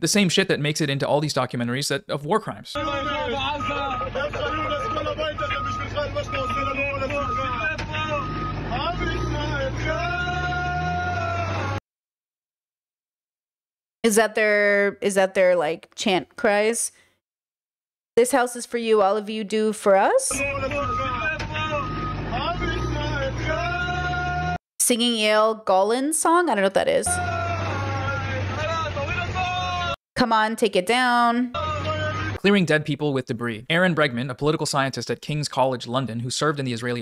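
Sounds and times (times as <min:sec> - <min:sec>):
low engine rumble: 0:02.8 - 0:11.8, 0:20.3 - 0:24.6, 0:27.1 - 0:30.0
voices chanting: 0:02.8 - 0:11.8, 0:20.3 - 0:24.6, 0:27.1 - 0:30.0, 0:31.6 - 0:32.4
voices chanting together: 0:07.2 - 0:11.8, 0:27.1 - 0:30.0.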